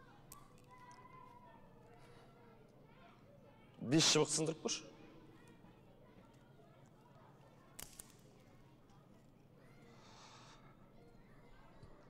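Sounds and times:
dry twigs cracking: 7.8 - 8.2.

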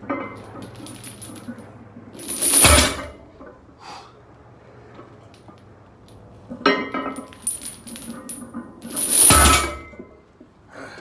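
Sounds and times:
chains clinking and rattling: 0.2 - 3.2, 6.9 - 10.0
metal plates clattering: 6.6 - 10.0.

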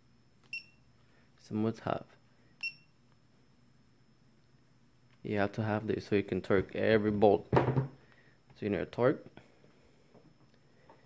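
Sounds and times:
high electronic beep: 2.6 - 2.9.

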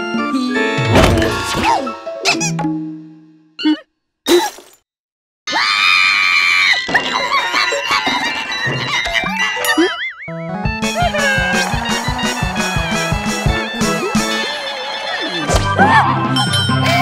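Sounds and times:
cartoon music: 0.3 - 2.8, 6.9 - 17.0
cartoon scream: 5.5 - 6.9.

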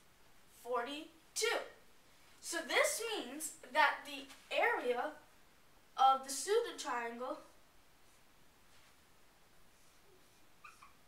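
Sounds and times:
marker strokes on whiteboard: 8.0 - 9.0.

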